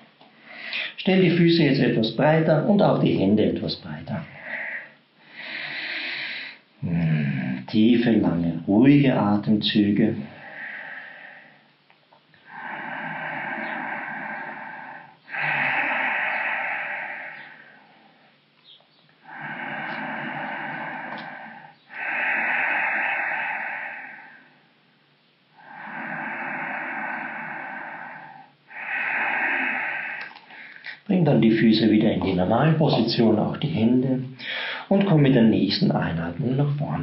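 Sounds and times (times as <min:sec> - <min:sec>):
man breathing deeply: 0:00.0 - 0:01.0, 0:04.2 - 0:07.5, 0:10.2 - 0:18.5, 0:19.1 - 0:31.1, 0:34.4 - 0:34.9.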